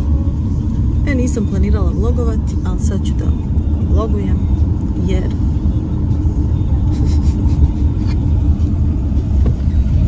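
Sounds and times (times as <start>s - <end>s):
car interior driving rumble: 0.0s - 10.0s.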